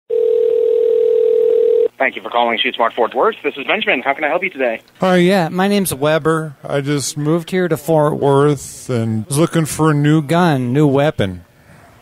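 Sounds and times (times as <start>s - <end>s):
telephone ringback tone: 0.1s - 1.9s.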